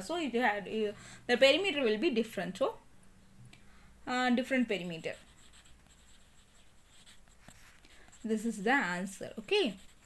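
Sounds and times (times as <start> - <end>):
pen writing on paper: 9.4 - 10.0.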